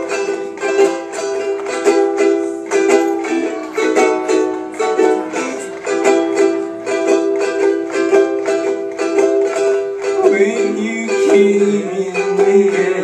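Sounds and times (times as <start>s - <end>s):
ukuleles strumming chords: 0.0s - 13.0s.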